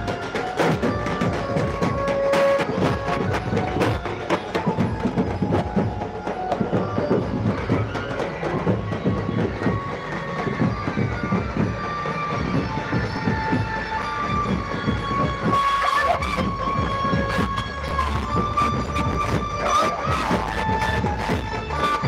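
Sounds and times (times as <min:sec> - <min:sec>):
loud music over loudspeakers: 0:00.0 - 0:22.0.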